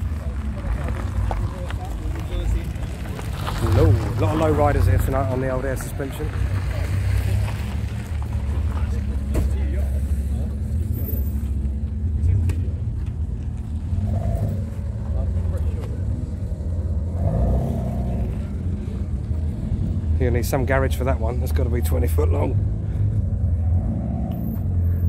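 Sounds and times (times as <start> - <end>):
faint voices: 0.0 - 22.6
car engine idling: 0.0 - 25.0.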